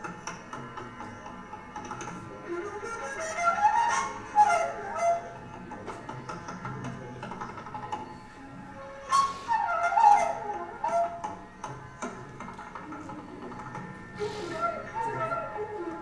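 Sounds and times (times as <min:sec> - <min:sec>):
tabla drumming: 0:00.0 - 0:08.2, 0:09.1 - 0:16.0
flute melody: 0:02.0 - 0:06.6, 0:07.9 - 0:16.0.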